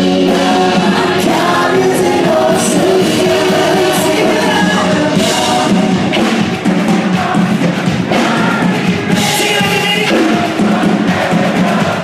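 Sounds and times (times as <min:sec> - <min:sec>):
drum kit: 0:00.0 - 0:12.0
live band playing upbeat song: 0:00.0 - 0:12.0
percussion drums: 0:00.0 - 0:12.0.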